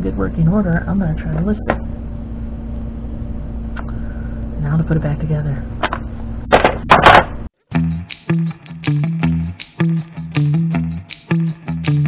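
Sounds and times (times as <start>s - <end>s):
handling noise bursts: 5.8s - 7.5s
guitar music with steady beat: 7.7s - 12.0s.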